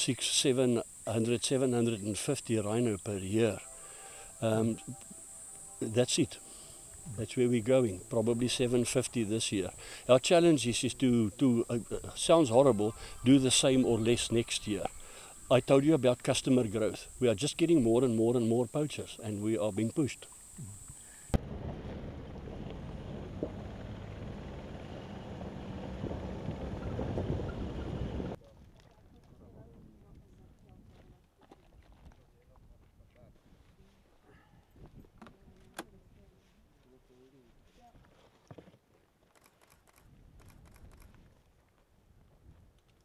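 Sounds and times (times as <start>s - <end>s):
vehicle driving on dirt track: 21.4s - 28.4s
wind on microphone: 21.4s - 31.2s.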